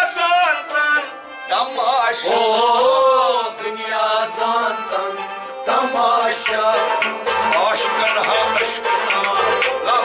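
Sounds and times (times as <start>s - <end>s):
harmonium drone: 0.0s - 10.0s
man singing: 0.0s - 10.0s.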